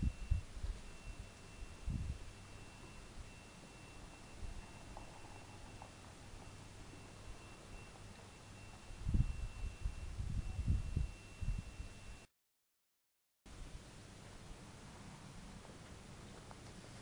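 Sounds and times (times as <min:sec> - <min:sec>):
wind buffeting on microphone: 0:00.0 - 0:02.3, 0:08.9 - 0:12.0
outdoor background hiss: 0:00.0 - 0:12.3, 0:13.5 - 0:17.0
thin high whine: 0:00.0 - 0:12.3.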